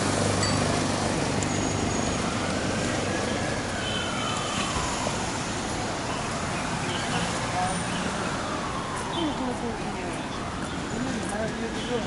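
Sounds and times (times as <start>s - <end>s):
city traffic noise: 0.0s - 12.0s
siren wailing: 1.5s - 5.8s, 7.7s - 11.0s.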